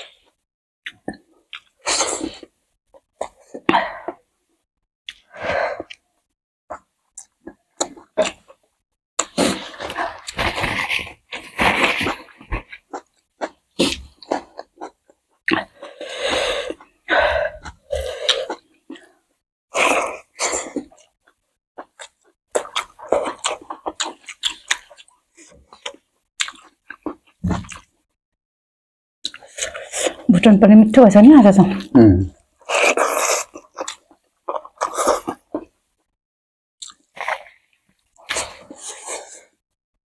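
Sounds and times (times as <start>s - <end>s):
chewing and mouth sounds: 0.8s - 1.9s, 9.2s - 16.0s, 19.8s - 27.9s, 29.2s - 30.3s, 32.6s - 35.7s, 36.8s - 39.1s.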